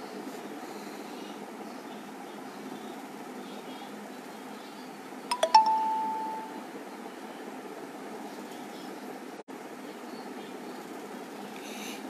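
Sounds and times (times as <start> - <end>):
short chime: 5.3 - 6.6.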